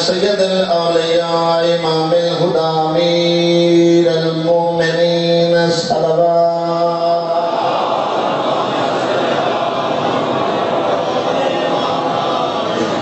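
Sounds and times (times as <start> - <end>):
man chanting through a microphone: 0.0 - 7.8.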